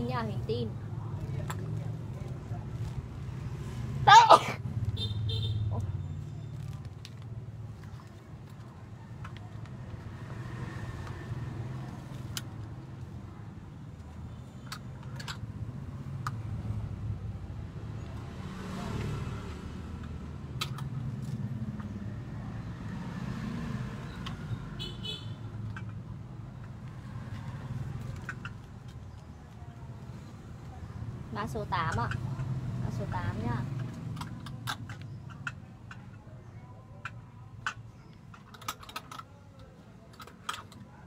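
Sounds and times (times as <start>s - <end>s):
road traffic rumble: 0.0s - 41.0s.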